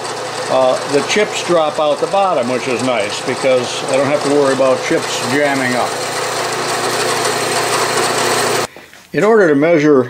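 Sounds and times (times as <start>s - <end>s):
milling machine spindle running: 0.0s - 8.7s.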